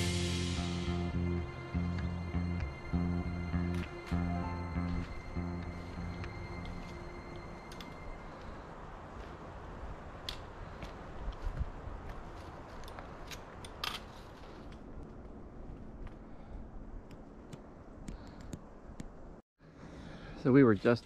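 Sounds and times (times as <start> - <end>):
background music: 0.0 - 8.4
outdoor ambience: 0.0 - 21.0
trekking poles and boots clicking on rocks: 10.1 - 16.2.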